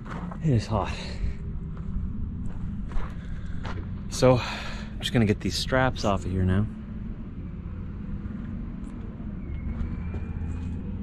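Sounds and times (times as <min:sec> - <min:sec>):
footsteps crunching on dirt: 0:00.0 - 0:04.1
low steady hum: 0:00.0 - 0:11.0.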